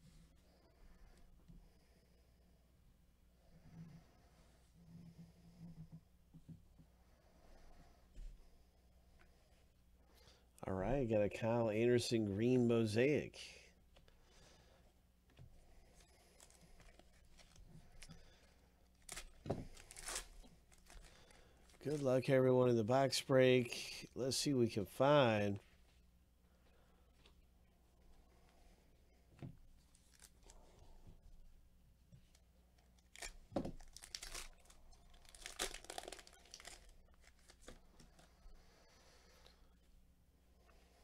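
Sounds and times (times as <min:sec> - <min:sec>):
plastic wrapper crinkling and tearing: 0:16.3 - 0:18.2, 0:18.9 - 0:22.0, 0:29.9 - 0:30.6, 0:32.8 - 0:38.3.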